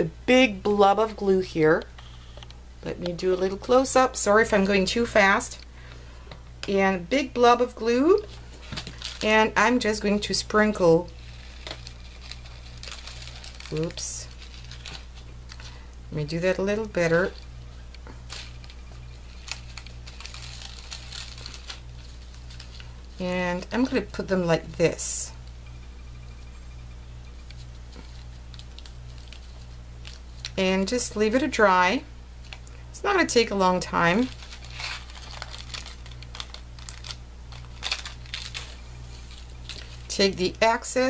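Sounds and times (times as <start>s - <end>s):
steady low hum: 0.0s - 41.0s
plastic bag crinkling: 7.9s - 24.2s, 27.5s - 40.8s.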